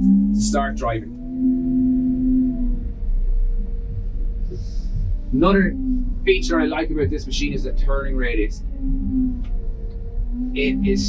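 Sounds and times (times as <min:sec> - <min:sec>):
sweeper engine low rumble: 0:00.0 - 0:11.0.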